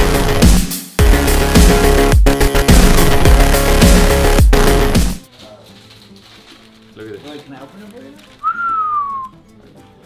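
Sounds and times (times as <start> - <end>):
person whistling sliding note: 8.4 - 9.3.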